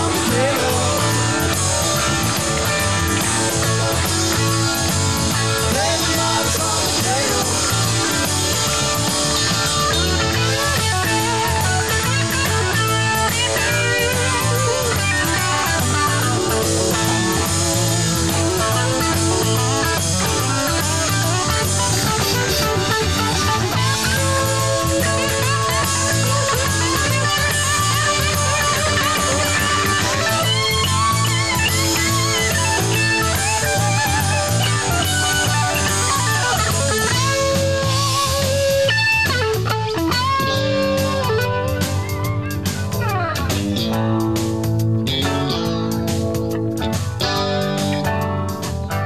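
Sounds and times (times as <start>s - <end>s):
bass guitar: 0.0s - 49.0s
drum kit beat: 0.0s - 49.0s
electric guitar solo: 0.0s - 49.0s.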